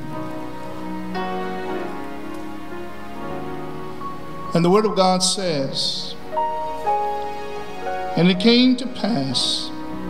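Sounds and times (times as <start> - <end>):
soft keyboard chords: 0.0 - 10.0.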